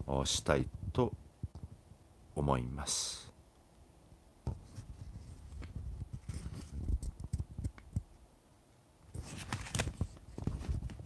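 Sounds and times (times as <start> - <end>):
paper rustling: 9.1 - 11.0.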